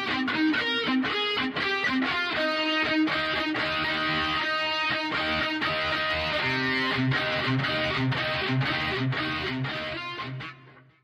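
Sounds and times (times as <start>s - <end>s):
distorted electric guitar chugging: 0.0s - 10.8s.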